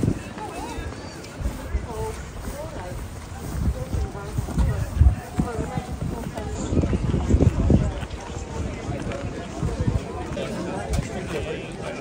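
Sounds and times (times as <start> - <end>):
background voices: 0.0 - 12.0
wind buffeting microphone: 0.0 - 12.0.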